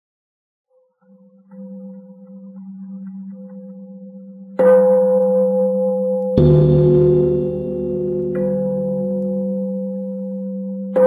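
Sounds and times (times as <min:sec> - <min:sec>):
bowl bell ringing: 0:01.1 - 0:11.0.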